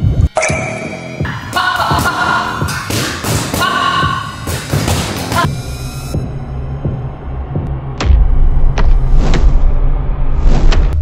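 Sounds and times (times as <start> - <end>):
background music: 0.0 - 10.7.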